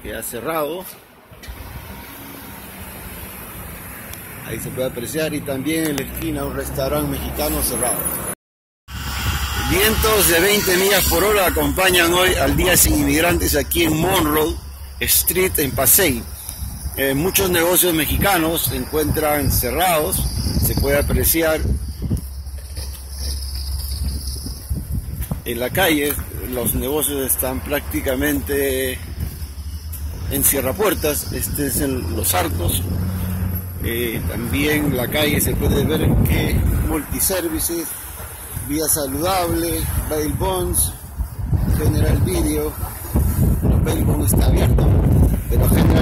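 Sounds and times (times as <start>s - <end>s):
street noise: 0.0s - 46.0s
wind buffeting microphone: 8.9s - 46.0s.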